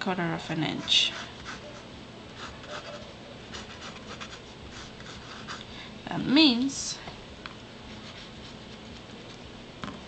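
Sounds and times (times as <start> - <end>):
pencil scratching on paper: 0.5 - 1.8, 2.4 - 5.6.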